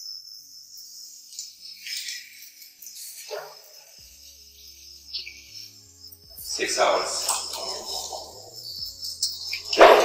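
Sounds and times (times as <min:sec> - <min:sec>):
background music with low notes: 0:00.0 - 0:10.0.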